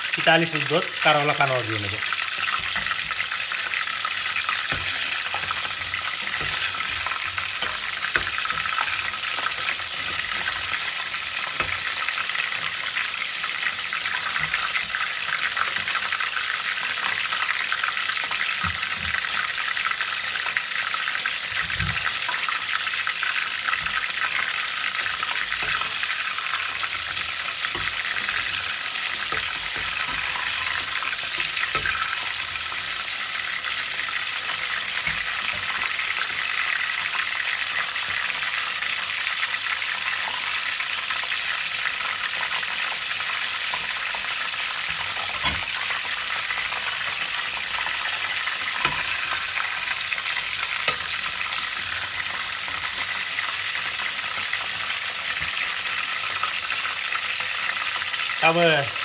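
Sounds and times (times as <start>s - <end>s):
fish deep-frying in oil: 0.0s - 59.0s.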